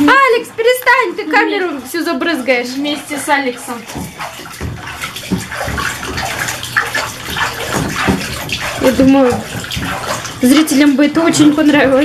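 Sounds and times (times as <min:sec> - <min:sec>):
baby slapping water: 0:00.0 - 0:12.0
bath water splashing: 0:00.0 - 0:12.0.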